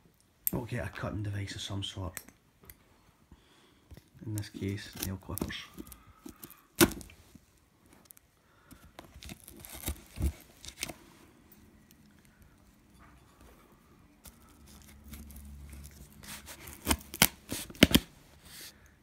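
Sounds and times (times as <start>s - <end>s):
nail clippers cutting packing tape: 16.2s - 18.1s.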